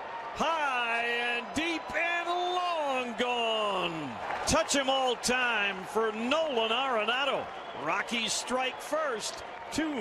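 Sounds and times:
sports announcer calling: 0.4 - 10.0.

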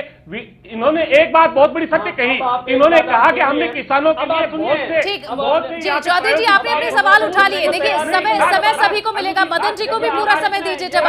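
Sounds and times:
people arguing over one another: 1.5 - 11.0.

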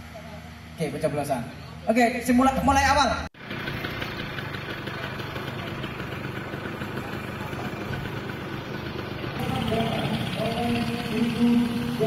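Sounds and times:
street traffic: 0.0 - 12.0
motorcycle engine idling: 3.4 - 12.0.

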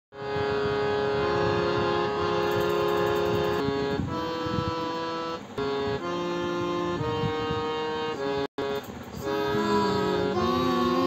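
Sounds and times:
electronic keyboard reedy notes: 0.2 - 11.0.

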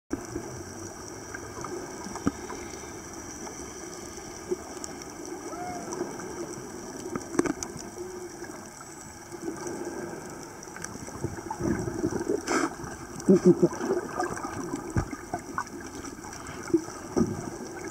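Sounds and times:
muffled underwater water noise: 0.1 - 17.9.

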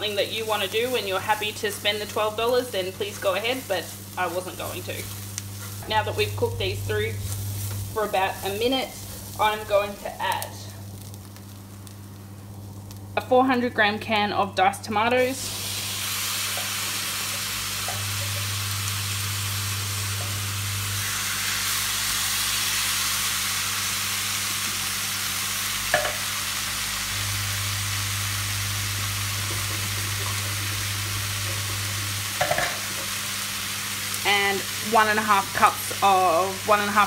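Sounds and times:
food sizzling in a frying pan: 0.0 - 14.0, 14.9 - 37.0
low steady hum: 0.0 - 22.3, 23.9 - 37.0.

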